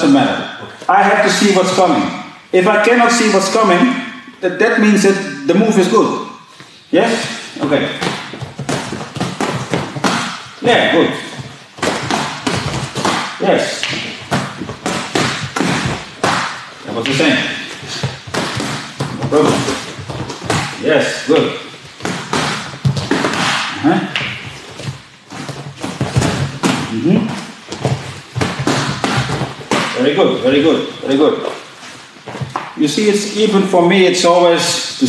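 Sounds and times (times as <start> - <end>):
gloved punches smacking mitts: 7.9 - 11.0, 11.8 - 20.9, 22.0 - 27.0, 27.7 - 30.0.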